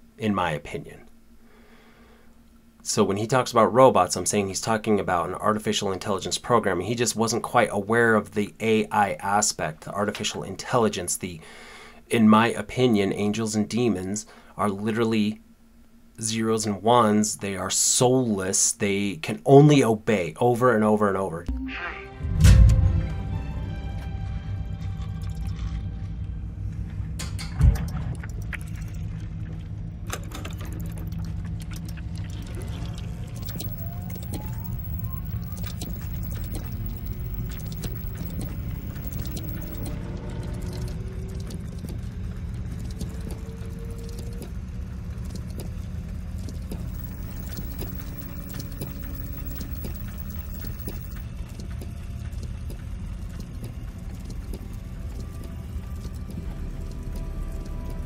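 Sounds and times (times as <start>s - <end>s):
deep drone: 27.8s - 58.0s
deep steady rumble: 28.1s - 51.2s
faint rising tones: 32.8s - 41.1s, 46.7s - 51.2s
mechanical clicks and ticks: 33.3s - 58.0s.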